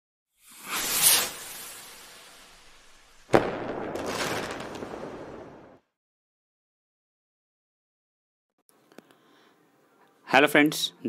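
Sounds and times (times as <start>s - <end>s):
hiss: 0.4s - 3.3s
firework-like crackling hiss: 0.4s - 5.8s.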